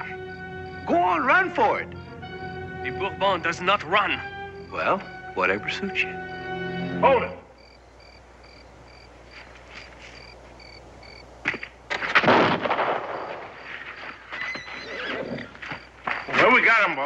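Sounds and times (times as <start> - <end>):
faint regular chirping: 1.6 - 11.8, 13.9 - 16.8
horse whinnying: 14.3 - 15.6.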